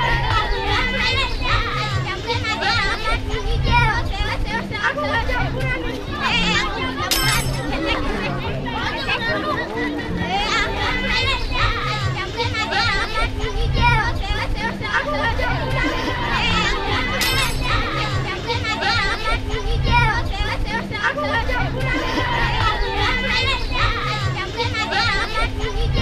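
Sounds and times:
children chattering and calling out: 0.0s - 26.0s.

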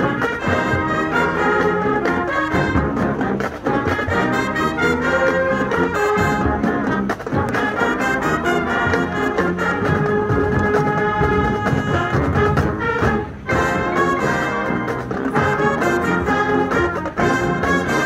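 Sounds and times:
marching band playing: 0.0s - 18.0s.

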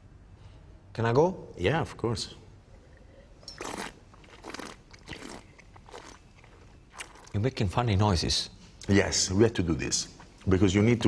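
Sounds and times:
person slurping wine: 3.0s - 7.3s.

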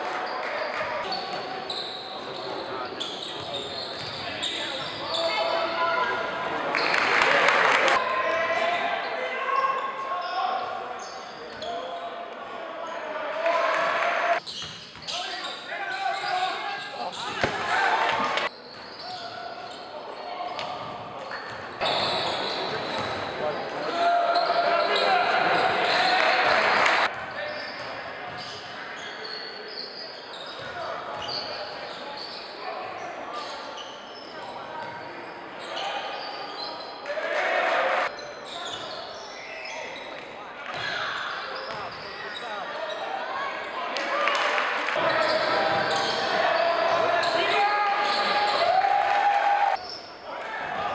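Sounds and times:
voices echoing in gym: 0.0s - 50.9s.

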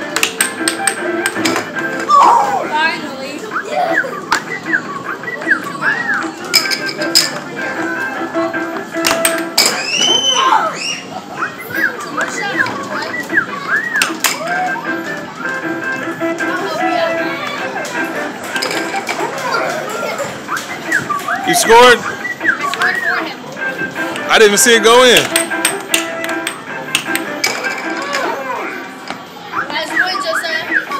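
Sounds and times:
air hockey puck and mallets clacking: 0.0s - 2.1s, 6.4s - 7.5s, 8.8s - 10.0s, 13.9s - 14.4s, 17.8s - 21.8s, 25.2s - 28.4s
electronic game machine sounds: 11.2s - 30.9s
children's voices: 18.9s - 20.4s.

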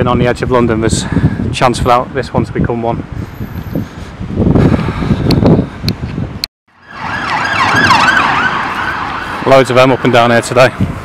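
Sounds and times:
road traffic rumble: 0.4s - 11.0s
emergency siren wailing: 6.7s - 10.6s.

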